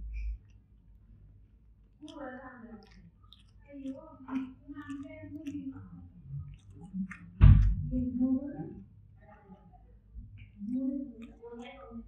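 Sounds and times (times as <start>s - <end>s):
person speaking: 2.0s - 8.8s.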